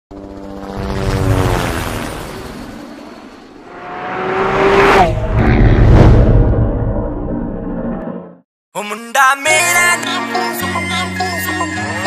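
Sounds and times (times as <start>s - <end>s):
fly-by whoosh: 0.8s - 8.4s
deep low rumble: 5.0s - 8.4s.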